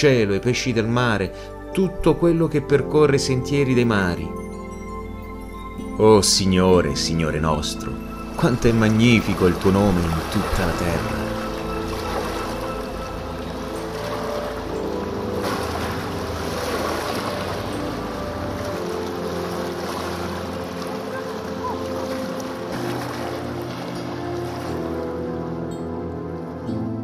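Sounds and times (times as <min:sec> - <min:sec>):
ambient keyboard music: 0:00.0 - 0:27.0
lake waves: 0:00.0 - 0:27.0
wind: 0:07.8 - 0:27.0.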